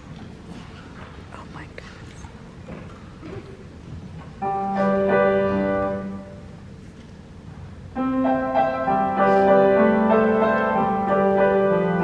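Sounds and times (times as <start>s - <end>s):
audience murmuring and whispering: 0.0s - 7.9s.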